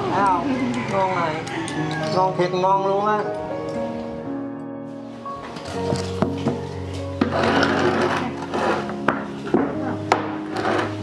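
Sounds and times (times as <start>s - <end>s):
background music: 0.0s - 11.0s
wooden mold scraping: 7.2s - 11.0s.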